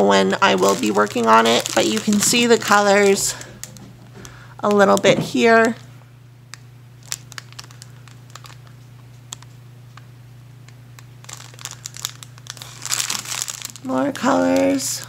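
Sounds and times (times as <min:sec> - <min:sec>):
plastic sleeve crinkling: 0:00.0 - 0:05.9, 0:07.0 - 0:10.1, 0:11.0 - 0:15.0
low steady hum: 0:00.0 - 0:15.0.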